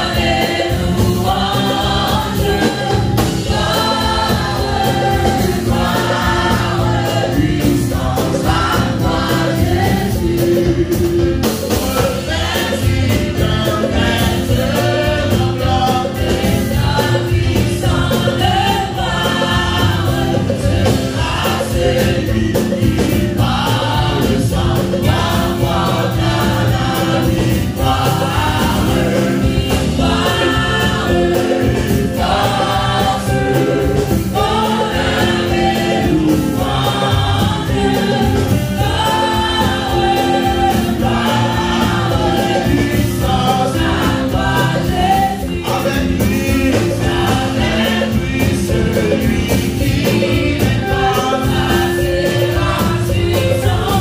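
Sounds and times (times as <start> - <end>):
choir singing gospel: 0.0 - 54.0
drum kit and guitar band: 0.0 - 54.0.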